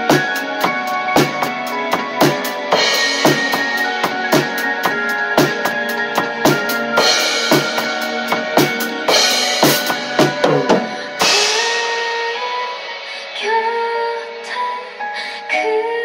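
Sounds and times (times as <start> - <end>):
drum kit beat with cymbals: 0.0 - 15.2
recorded song backing tones: 0.0 - 16.0
crash cymbal: 7.0 - 14.5.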